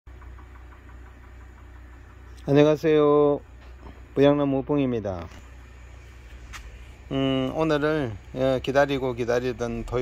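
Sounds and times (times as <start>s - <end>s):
low mechanical hum: 0.1s - 10.0s.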